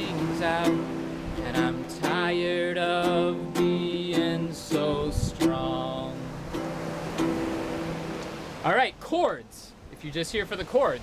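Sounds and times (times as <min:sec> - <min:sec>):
acoustic guitar chord strummed: 0:00.0 - 0:08.7.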